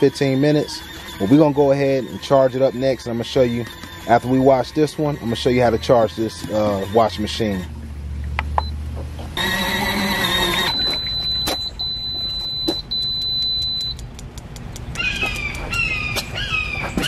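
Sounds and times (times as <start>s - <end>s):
washing machine beeping: 0.0s - 7.6s, 9.4s - 14.0s.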